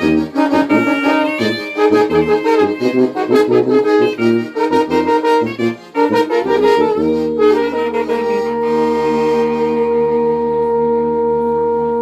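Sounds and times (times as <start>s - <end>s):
trombone clarinet and accordion chord: 0.0s - 12.0s.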